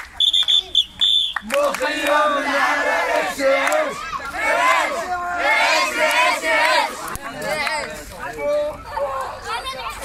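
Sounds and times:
children chanting together: 0:01.8 - 0:07.6.

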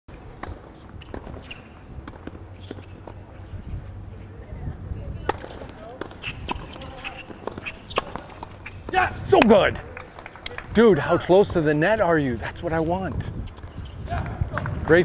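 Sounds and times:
tennis balls bouncing on court: 0:00.2 - 0:03.6, 0:05.2 - 0:11.8, 0:13.0 - 0:15.0
tennis balls struck by rackets: 0:00.3 - 0:03.3, 0:05.2 - 0:10.7.

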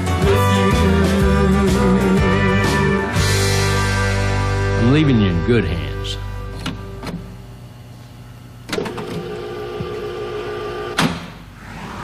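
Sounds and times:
held musical chord: 0:01.8 - 0:06.6.

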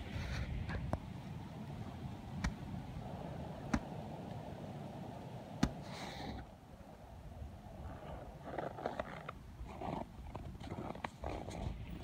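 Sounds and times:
footsteps crunching in snow: 0:08.2 - 0:12.0.

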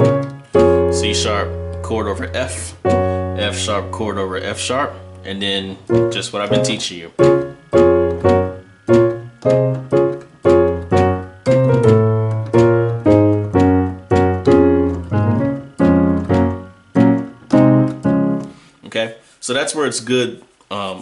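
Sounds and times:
piano chords with bass notes: 0:00.0 - 0:18.8.

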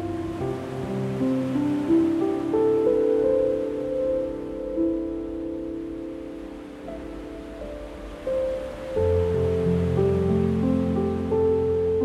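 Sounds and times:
gentle solo piano music: 0:00.0 - 0:12.0
ocean waves: 0:00.0 - 0:12.0.

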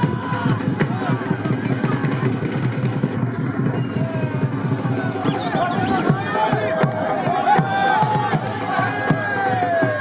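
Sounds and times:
crowd shouting and cheering: 0:00.0 - 0:10.0
drum beaten fast: 0:00.0 - 0:10.0.

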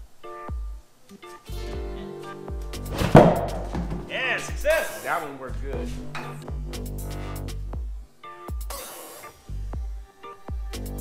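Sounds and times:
electronic music with beat: 0:00.0 - 0:11.0
loud tire bang: 0:02.9 - 0:04.1.

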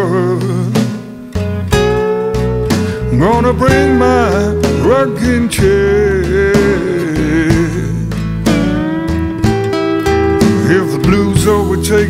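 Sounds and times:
live blues band playing: 0:00.0 - 0:12.0.

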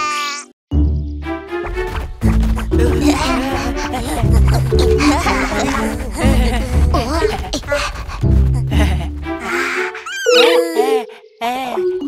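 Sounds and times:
cartoon baby dinosaur cries: 0:00.0 - 0:00.5, 0:09.4 - 0:11.0.

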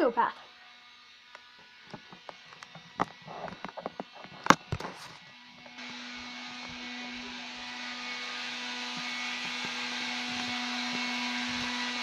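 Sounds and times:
electric grinder running: 0:00.3 - 0:12.0.

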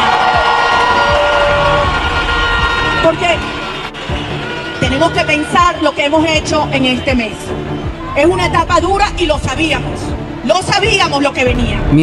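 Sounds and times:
crowd cheering and shouting: 0:00.0 - 0:09.1.

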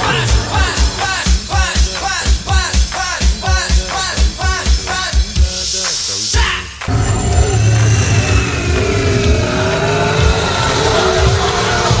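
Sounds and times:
music: 0:00.0 - 0:12.0
car engine accelerating: 0:06.9 - 0:12.0.

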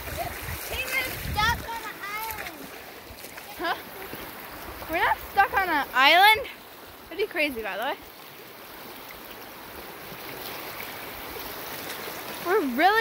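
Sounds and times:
stream water rushing: 0:00.0 - 0:13.0.

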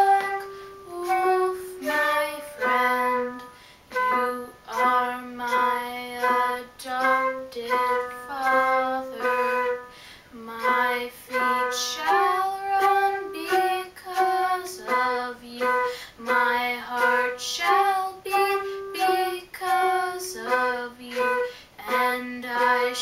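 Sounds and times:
girl singing slow melody: 0:00.0 - 0:23.0
flute: 0:10.6 - 0:23.0.

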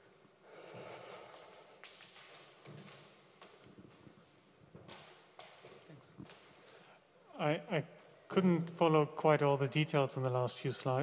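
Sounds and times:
quiet rustles and taps: 0:01.4 - 0:06.8.

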